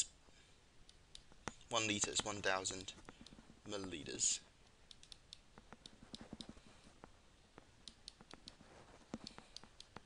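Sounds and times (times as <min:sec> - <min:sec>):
stylus tapping on tablet screen: 0:00.9 - 0:03.5, 0:04.8 - 0:10.0.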